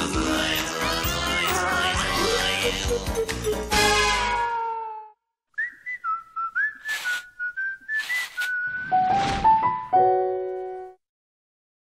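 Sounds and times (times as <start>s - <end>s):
cartoon music: 0.0s - 4.6s
whistled tune: 5.5s - 9.2s.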